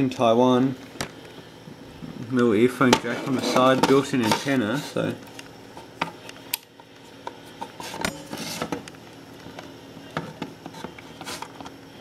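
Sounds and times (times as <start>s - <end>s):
plastic radio handling noise: 2.9s - 11.8s.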